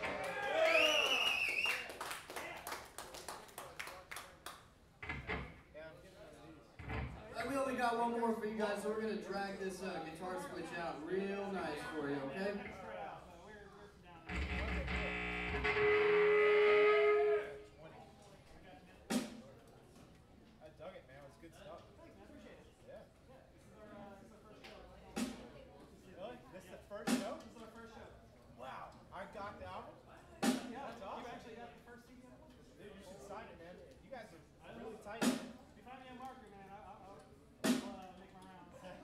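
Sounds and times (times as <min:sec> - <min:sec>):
crowd chatter: 0:00.0 - 0:01.6, 0:02.2 - 0:39.0
electric guitar note ringing: 0:14.3 - 0:17.6.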